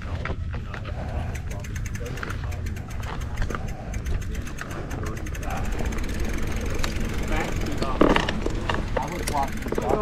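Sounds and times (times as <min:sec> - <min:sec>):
tyres rolling on dirt: 0:00.0 - 0:10.0
bike rattling clicks: 0:00.3 - 0:10.0.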